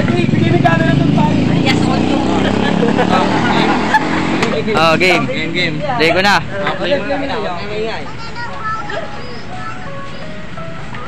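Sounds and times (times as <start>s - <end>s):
vehicle engine running: 0.0s - 6.8s
voices talking: 0.0s - 11.0s.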